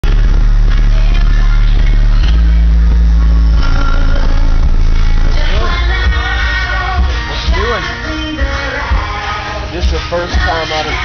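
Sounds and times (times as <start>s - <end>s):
subwoofers playing bass-heavy music: 0.0s - 11.0s.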